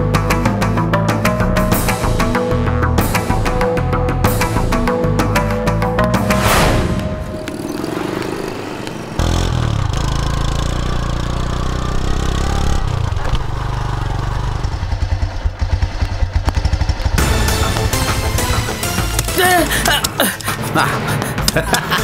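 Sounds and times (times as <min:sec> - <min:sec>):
background music: 0:00.0 - 0:10.8, 0:17.2 - 0:22.0
motorcycle engine running: 0:07.0 - 0:19.3.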